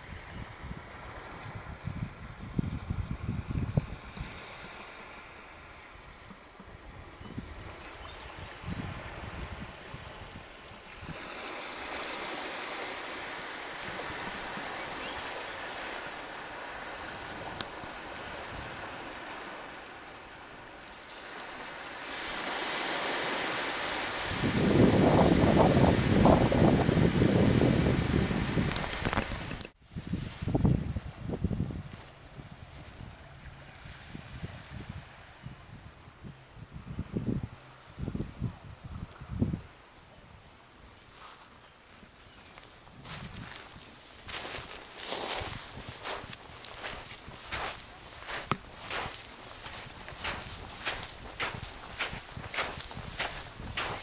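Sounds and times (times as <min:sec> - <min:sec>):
wind gusting on microphone: 0:00.0 - 0:19.6, 0:22.1 - 0:40.5, 0:42.4 - 0:54.0
water trickling over rocks: 0:46.0 - 0:54.0.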